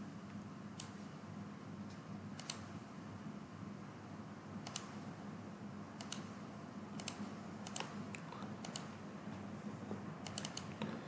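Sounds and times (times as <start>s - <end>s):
low steady hum: 0.0s - 11.0s
computer mouse clicks: 0.8s - 1.0s, 2.4s - 2.7s, 4.6s - 5.0s, 6.0s - 6.3s, 7.0s - 8.9s, 10.2s - 11.0s.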